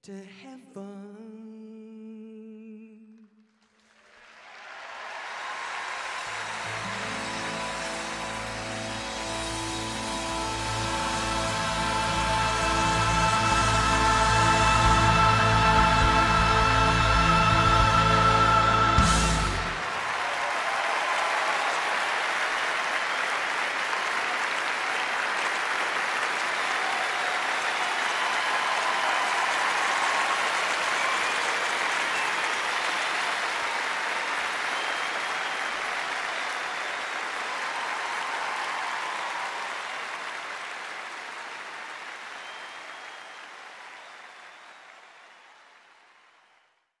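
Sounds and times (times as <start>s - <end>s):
audience applauding: 3.4s - 46.9s.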